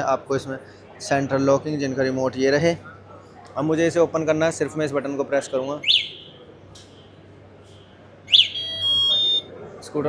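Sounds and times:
scooter alarm chirp: 8.3 - 9.5
high electronic beep: 8.4 - 9.5.

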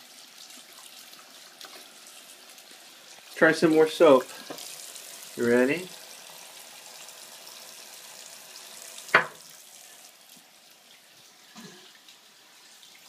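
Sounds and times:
faucet running into sink: 0.0 - 13.0.

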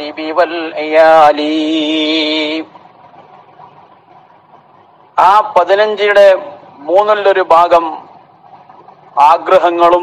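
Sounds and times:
man chanting: 0.0 - 2.7, 5.2 - 8.1, 9.2 - 10.0.

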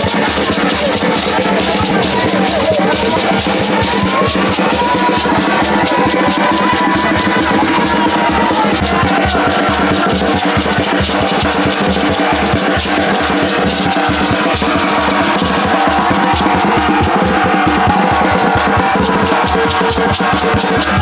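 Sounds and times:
hand drum played with palms: 0.0 - 21.0.

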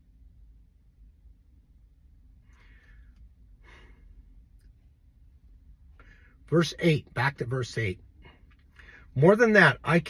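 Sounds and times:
low background rumble: 0.0 - 10.0
man breathing out: 2.5 - 4.3.

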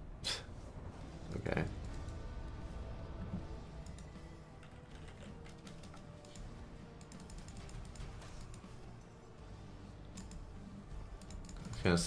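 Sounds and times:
man speaking: 11.8 - 12.0.

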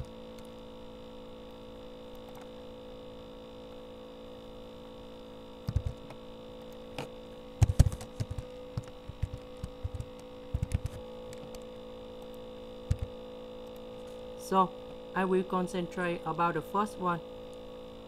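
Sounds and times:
electrical mains hum: 0.0 - 18.0
computer mouse and keyboard clicks: 5.6 - 13.8.

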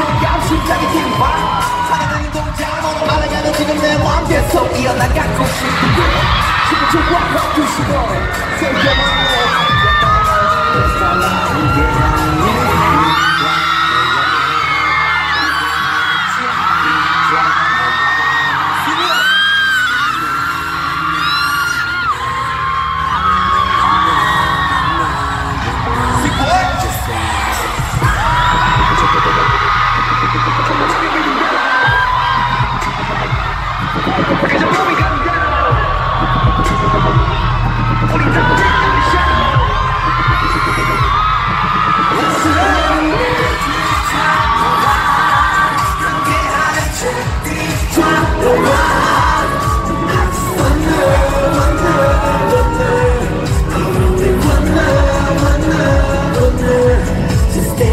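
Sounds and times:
fans screaming and cheering: 0.0 - 57.9
pop dance music with heavy bass: 0.0 - 57.9.

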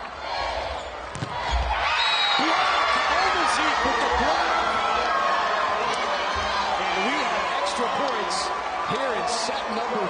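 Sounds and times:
crowd and players' voices: 0.0 - 10.0
volleyball hit: 1.1 - 1.8.

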